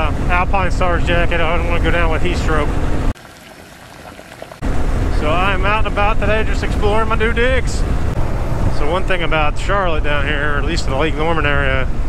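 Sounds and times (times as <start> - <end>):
wind buffeting helmet microphone: 4.0 - 12.0.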